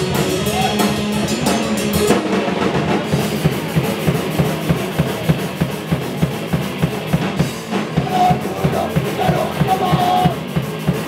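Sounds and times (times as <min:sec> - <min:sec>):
drums fast beat: 0:00.0 - 0:11.0
punk band playing live: 0:00.0 - 0:11.0.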